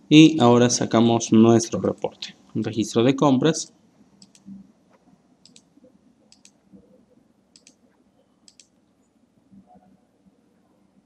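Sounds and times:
computer mouse clicks: 4.2s - 4.6s, 5.4s - 5.7s, 6.3s - 6.6s, 7.5s - 7.8s, 8.4s - 8.8s.

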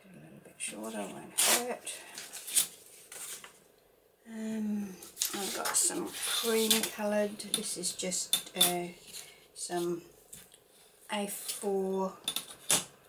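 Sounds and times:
paper tearing: 1.4s - 1.7s
paper sheets being moved: 5.2s - 6.8s.

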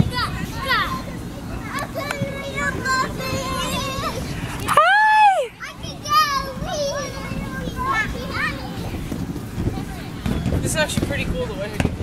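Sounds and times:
children squealing and calling: 0.0s - 9.0s.

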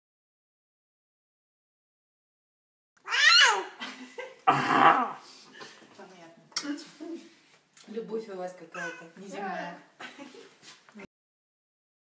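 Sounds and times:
high-pitched descending cry: 3.1s - 3.7s.

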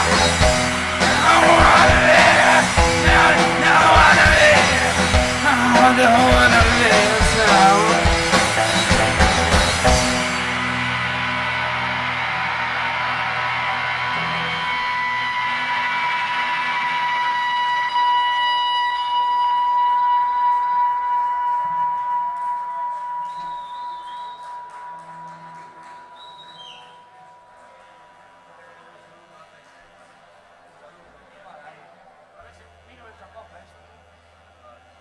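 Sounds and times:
guitar feedback drone: 0.0s - 27.0s
faint whistles: 23.0s - 25.0s, 25.8s - 27.2s.

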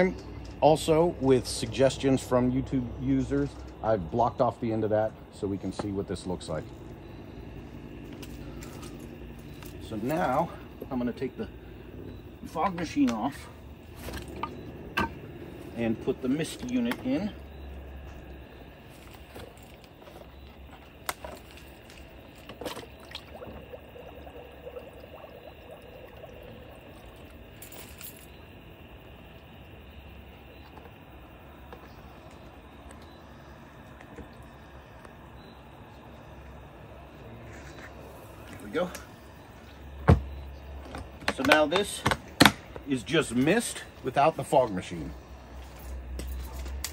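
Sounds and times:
faint insect chirping: 0.0s - 46.9s
steady low hum: 0.0s - 46.9s.

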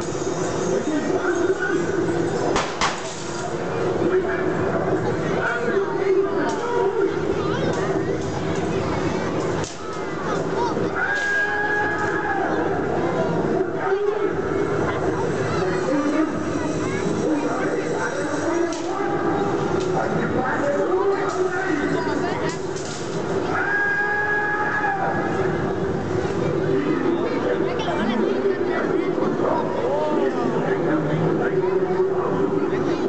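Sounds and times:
crowd noise: 0.0s - 33.0s
people's voices: 0.0s - 33.0s.

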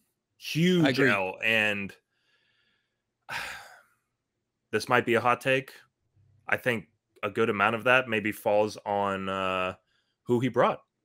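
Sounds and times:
man sighing into microphone: 3.3s - 3.8s.

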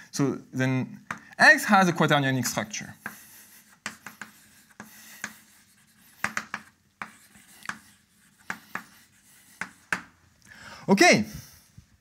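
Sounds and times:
chalk tapping and scratching: 2.4s - 10.2s.

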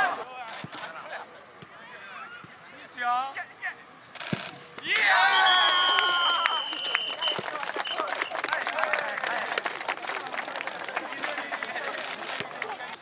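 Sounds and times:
crowd cheering: 4.8s - 13.0s
crowd clapping: 5.5s - 13.0s.

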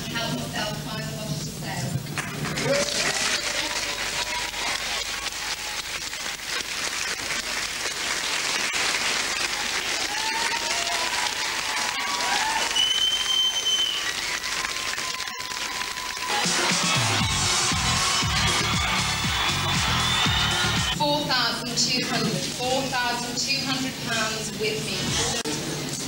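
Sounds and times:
audience applauding: 2.1s - 21.0s.

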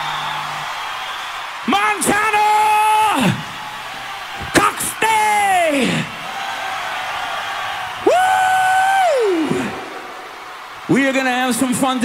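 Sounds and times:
concert crowd cheering: 0.0s - 12.0s
man shouting into microphone: 4.4s - 6.2s.

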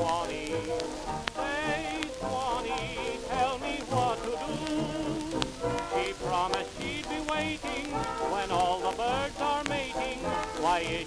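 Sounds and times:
jazz dance band on old record: 0.0s - 11.0s
record surface crackle and clicks: 0.0s - 11.0s.

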